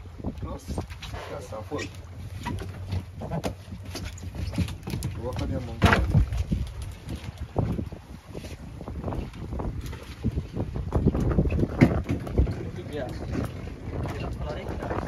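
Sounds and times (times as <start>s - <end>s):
wind rumbling on microphone: 0.0s - 15.0s.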